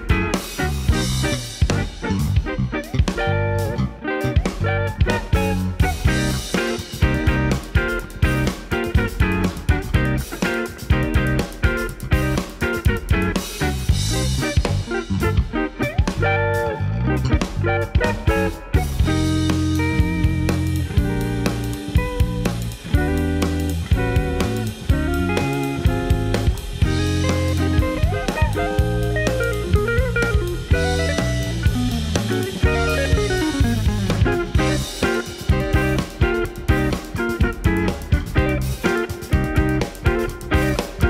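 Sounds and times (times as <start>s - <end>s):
bass holding long low notes: 0.0s - 41.0s
busy drumming: 0.0s - 41.0s
jazz-funk band playing: 0.0s - 41.0s.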